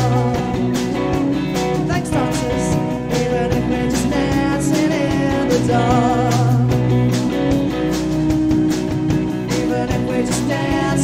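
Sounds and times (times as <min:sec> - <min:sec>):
rock band playing instrumental: 0:00.0 - 0:11.0.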